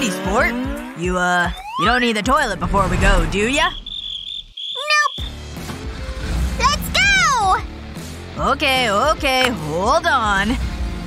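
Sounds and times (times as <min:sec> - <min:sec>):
background music: 0:00.0 - 0:03.6, 0:05.2 - 0:11.0.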